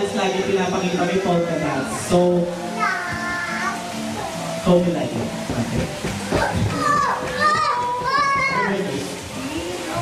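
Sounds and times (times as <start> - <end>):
crowd talking and calling out: 0.0 - 10.0
children's voices: 1.6 - 4.4, 6.3 - 10.0.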